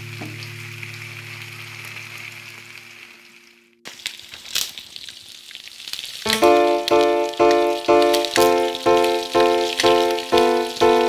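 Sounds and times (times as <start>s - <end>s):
meat sizzling in oil: 0.0s - 11.0s
music with plucked notes: 6.3s - 11.0s.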